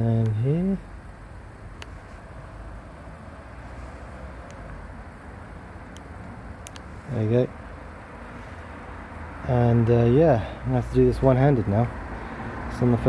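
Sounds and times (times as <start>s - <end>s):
outdoor background rumble: 0.0s - 13.0s.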